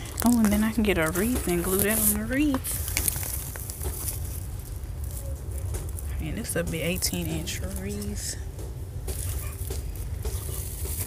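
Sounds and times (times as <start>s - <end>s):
crackly rustling of plastic wreaths: 0.0s - 11.0s
low rumble of phone handling: 0.0s - 11.0s.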